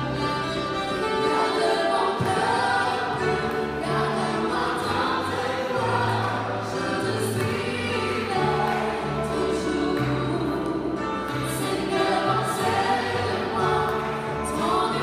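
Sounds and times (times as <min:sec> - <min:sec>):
alto saxophone: 0:00.0 - 0:05.4
keyboard sustained bass notes: 0:00.0 - 0:15.0
women singing: 0:01.0 - 0:15.0.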